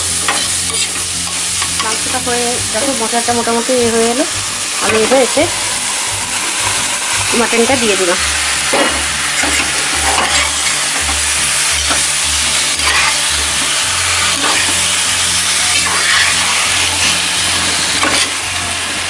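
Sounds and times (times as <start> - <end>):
meat sizzling in hot oil: 0.0 - 19.0
spatula scraping a pan: 0.1 - 2.1, 4.8 - 18.4.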